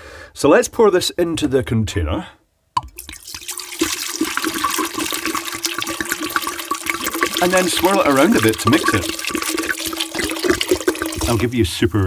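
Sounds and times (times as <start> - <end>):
liquid pouring into metal pot: 2.8 - 11.5.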